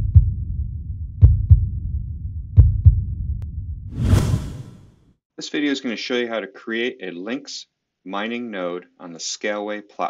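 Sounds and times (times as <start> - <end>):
deep bass thumps: 1.2 - 1.8, 2.6 - 3.2
low rumble: 3.4 - 4.9
whoosh: 3.9 - 5.0.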